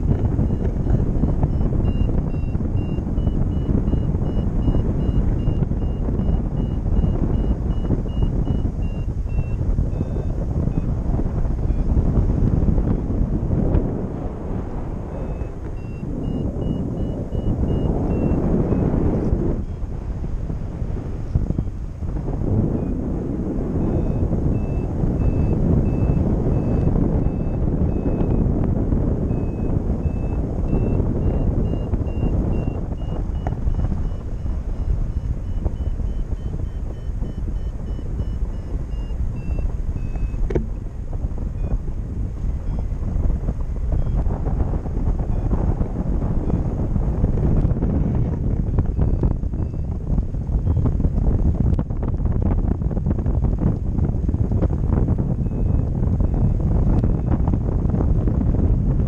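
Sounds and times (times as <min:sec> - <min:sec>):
wind rushing over microphone: 0:00.0 - 0:59.0
variometer rapid high beeps: 0:00.2 - 0:10.9, 0:15.1 - 0:18.8, 0:23.8 - 0:28.4, 0:29.2 - 0:40.8, 0:48.9 - 0:50.0, 0:55.4 - 0:57.3.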